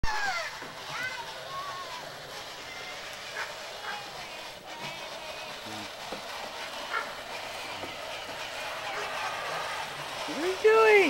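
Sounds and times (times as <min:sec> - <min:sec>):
toy wheels rolling over dry grass: 0:00.1 - 0:11.0.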